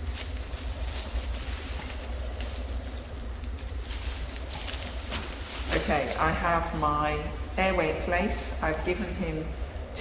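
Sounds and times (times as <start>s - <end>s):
plastic rustling: 0.0s - 7.3s
steady low hum: 0.0s - 10.0s.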